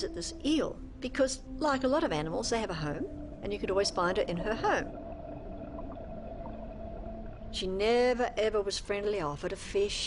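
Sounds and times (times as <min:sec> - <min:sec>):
steady hum: 0:00.0 - 0:09.9.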